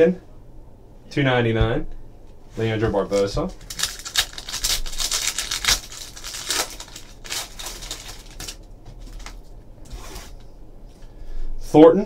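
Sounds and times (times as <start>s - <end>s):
foil wrapper tearing: 3.1s - 9.4s
cards and wrapper rustling: 3.1s - 9.5s.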